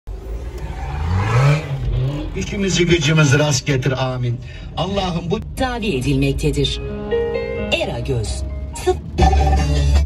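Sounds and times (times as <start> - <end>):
car engine accelerating: 0.1 - 10.0.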